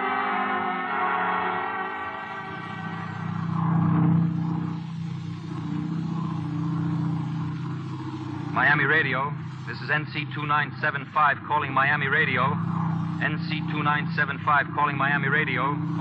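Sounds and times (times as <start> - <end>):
orchestral music: 0.0 - 3.5
light plane engine drone: 2.4 - 16.0.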